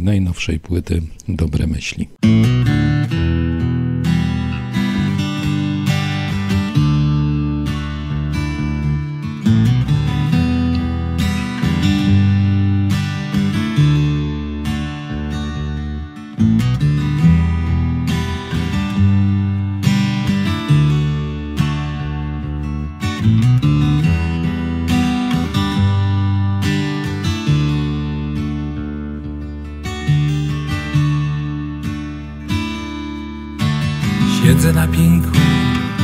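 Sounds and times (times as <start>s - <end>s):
strummed acoustic guitar: 2.2s - 36.0s.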